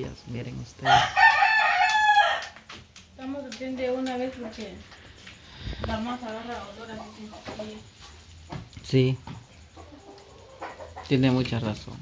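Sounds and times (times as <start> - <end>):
rooster crowing: 0.8 - 2.6.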